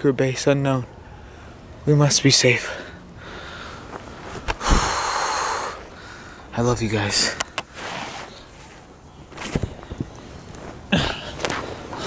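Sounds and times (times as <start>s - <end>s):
person breathing out hard: 4.6s - 6.5s.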